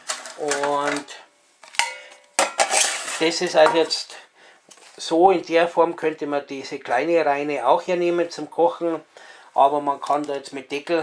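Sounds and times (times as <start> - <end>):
metal pans clanking: 0.0 - 4.0
metal pans clattering: 0.0 - 4.0.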